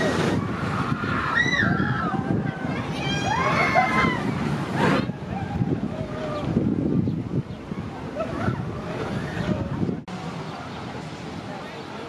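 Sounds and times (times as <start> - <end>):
roller coaster rumbling on track: 0.0 - 12.0.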